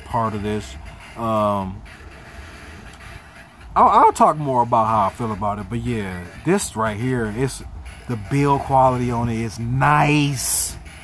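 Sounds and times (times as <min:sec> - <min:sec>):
man speaking: 0:00.0 - 0:02.0, 0:03.7 - 0:10.8.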